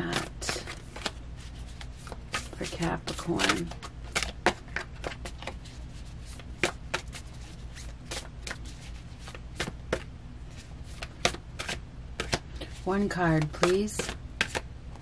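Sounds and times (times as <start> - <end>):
cards being shuffled: 0.0 - 14.7.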